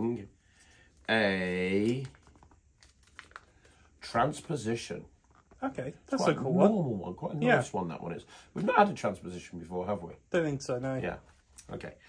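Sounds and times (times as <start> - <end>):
paper slip being unfolded: 1.7 - 3.9.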